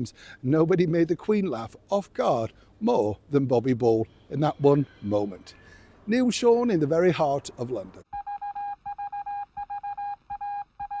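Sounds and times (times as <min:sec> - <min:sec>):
electronic beeping pulses: 0:08.2 - 0:11.0.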